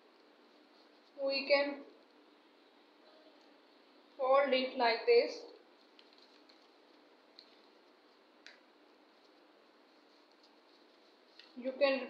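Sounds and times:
paper being folded: 5.6s - 11.7s.

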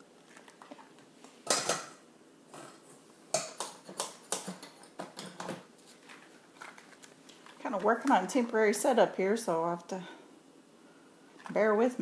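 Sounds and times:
containers knocking and clattering: 0.5s - 8.3s.

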